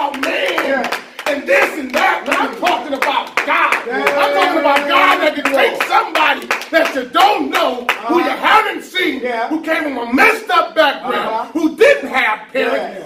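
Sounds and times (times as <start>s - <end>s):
congregation hand-clapping: 0.0s - 8.3s
loud voices calling out: 0.0s - 13.0s.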